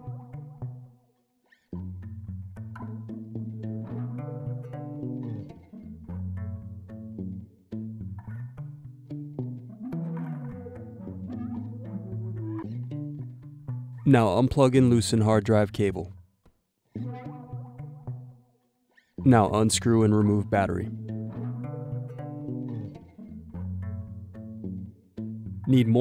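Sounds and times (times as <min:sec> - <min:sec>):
background music: 0:00.0 - 0:16.2, 0:17.0 - 0:18.6, 0:19.2 - 0:26.0.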